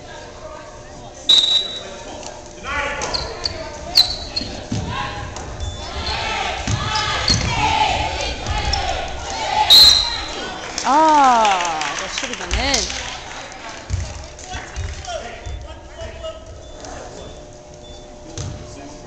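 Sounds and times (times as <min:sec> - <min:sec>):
sneaker squeaks on hardwood: 0:03.0 - 0:04.8, 0:05.6 - 0:07.6
basketball bouncing: 0:04.4 - 0:09.5, 0:13.9 - 0:16.2
people shouting in a hall: 0:05.8 - 0:11.9.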